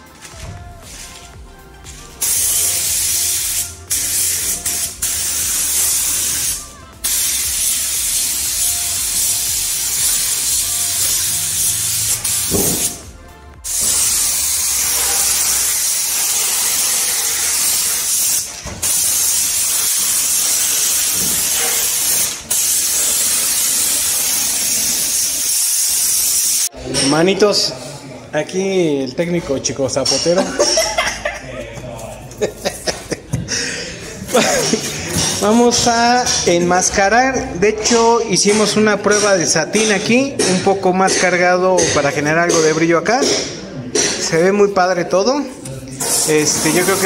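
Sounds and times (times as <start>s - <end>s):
paint spray gun hissing: 2.2s - 26.7s, 46.0s - 47.0s.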